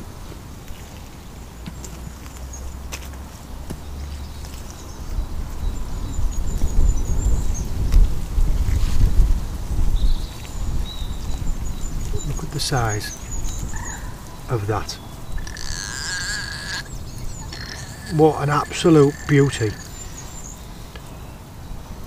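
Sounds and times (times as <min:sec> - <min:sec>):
small birds chirping: 0:00.2 - 0:22.0
wind buffeting microphone: 0:04.3 - 0:20.9.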